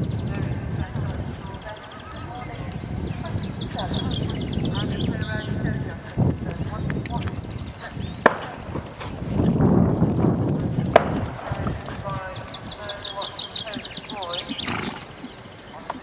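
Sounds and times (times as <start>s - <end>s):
horse hoofbeats on turf: 3.2s - 16.0s.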